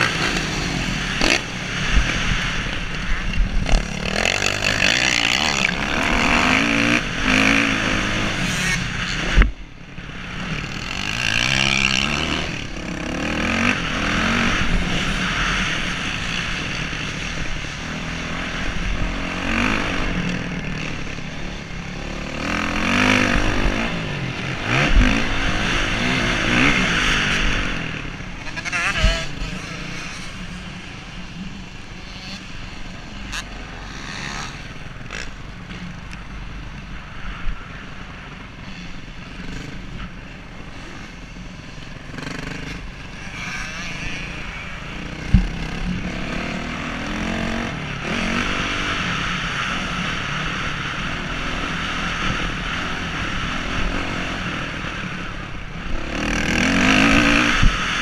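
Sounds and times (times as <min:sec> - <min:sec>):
dirt bike engine revving: 0:00.0 - 0:09.5, 0:10.2 - 0:30.8, 0:31.9 - 0:35.3, 0:40.7 - 0:58.0
wind rushing over microphone: 0:00.0 - 0:33.8, 0:44.2 - 0:58.0.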